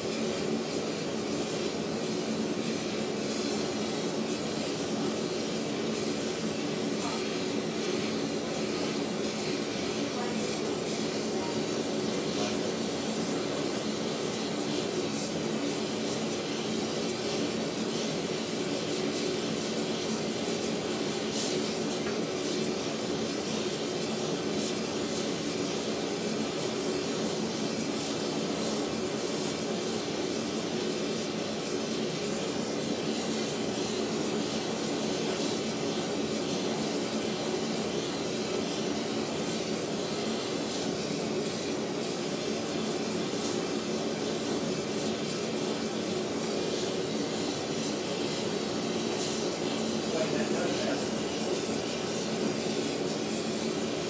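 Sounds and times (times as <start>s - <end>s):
gas torch roaring: 0.0s - 54.0s.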